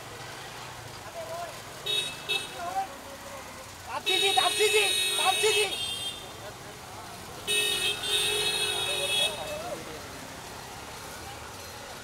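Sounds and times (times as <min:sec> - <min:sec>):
car horn honking: 0:04.0 - 0:06.3, 0:07.5 - 0:09.7.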